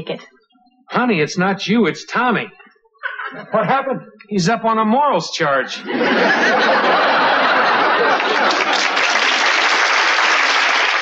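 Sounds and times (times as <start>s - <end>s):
audience laughter: 5.7s - 11.0s
audience applauding: 6.4s - 11.0s.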